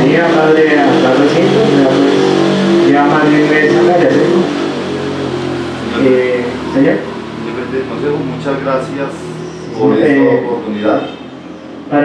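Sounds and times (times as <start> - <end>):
indistinct talking: 0.0 - 12.0
steady low hum: 0.0 - 12.0.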